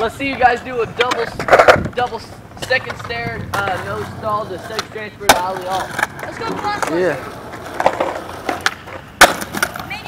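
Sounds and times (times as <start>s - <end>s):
skateboard clacking on ground: 0.0s - 10.0s
skateboard rolling on concrete: 0.0s - 10.0s.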